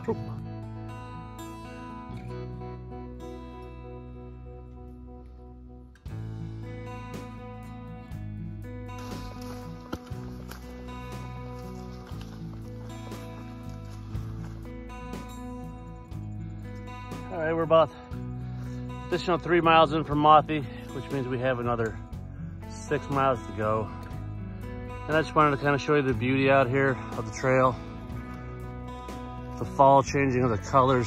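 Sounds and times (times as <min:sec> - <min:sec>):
acoustic guitar music: 0:00.0 - 0:31.0
man's voice: 0:19.1 - 0:22.0, 0:25.1 - 0:27.8, 0:29.6 - 0:31.0.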